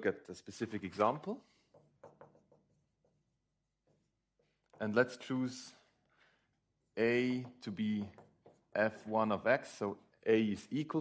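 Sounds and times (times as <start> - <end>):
marker writing on whiteboard: 1.4 - 6.0, 6.6 - 9.4.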